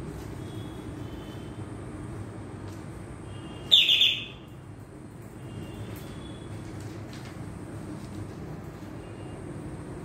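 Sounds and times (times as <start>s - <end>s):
bird chirping: 3.6s - 4.5s.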